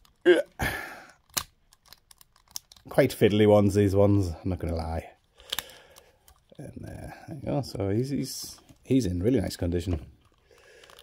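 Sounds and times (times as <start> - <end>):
plastic toy parts rustling: 0.0 - 0.3, 1.1 - 6.6, 7.5 - 11.0
sharp plastic click: 1.2 - 2.9.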